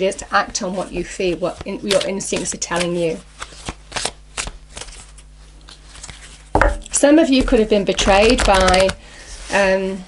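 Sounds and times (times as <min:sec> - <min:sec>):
cards being shuffled: 0:01.2 - 0:06.5, 0:07.5 - 0:09.0.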